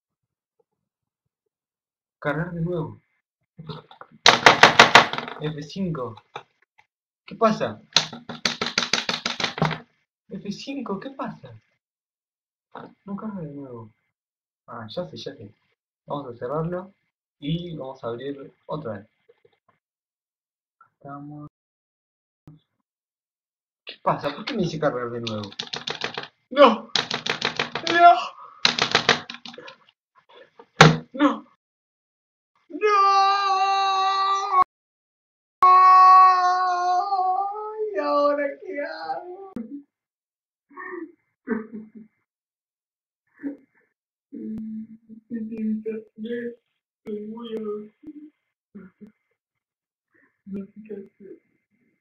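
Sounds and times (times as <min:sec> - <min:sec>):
keyboard being struck rapidly: 0:04.3 - 0:05.3, 0:08.0 - 0:09.8, 0:25.3 - 0:26.3, 0:27.0 - 0:29.6
keyboard key hits: 0:25.3 - 0:26.3, 0:27.0 - 0:28.0, 0:28.7 - 0:29.7
frustrated voice: 0:27.8 - 0:28.4, 0:32.7 - 0:34.7, 0:35.6 - 0:39.6.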